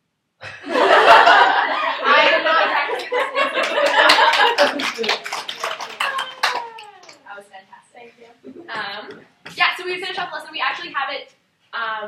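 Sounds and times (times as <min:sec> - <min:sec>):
hand clapping: 0:03.0 - 0:07.3.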